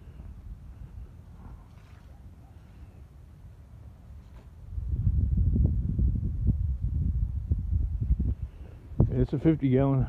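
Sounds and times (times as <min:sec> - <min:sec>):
wind buffeting microphone: 0:04.6 - 0:10.0.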